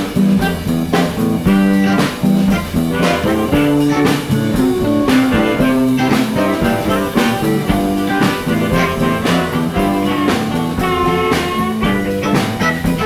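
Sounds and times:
blues band playing: 0:00.0 - 0:13.0
guitar: 0:00.0 - 0:13.0
steady drum beat: 0:00.0 - 0:13.0.

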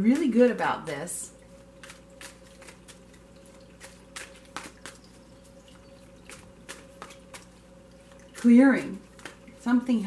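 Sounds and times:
faint steady hum: 0:00.0 - 0:10.0
water fountain trickling: 0:00.2 - 0:09.9
cards being shuffled: 0:01.8 - 0:09.6.

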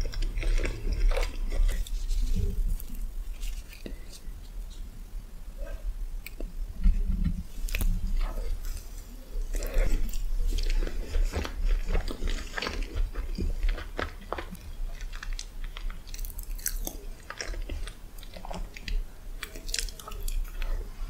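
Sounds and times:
person chewing with wet mouth clicks: 0:09.5 - 0:20.8.

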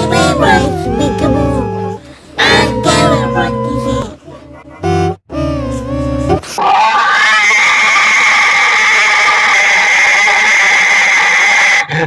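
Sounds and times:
short pitched tone: 0:04.7 - 0:06.5.

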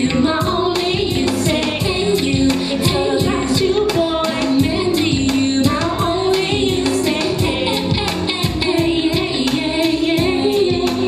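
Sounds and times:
backing music with steady beat: 0:00.0 - 0:11.0
woman singing into a microphone: 0:00.0 - 0:11.0.

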